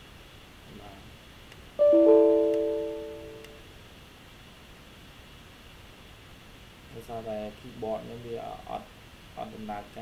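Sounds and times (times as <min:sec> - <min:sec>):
piano-like computer chime: 0:01.8 - 0:03.6.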